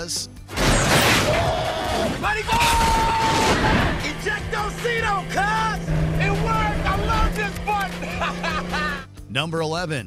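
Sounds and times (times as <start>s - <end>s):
car engine droning: 3.8s - 9.1s
man laughing and whooping: 6.8s - 9.1s.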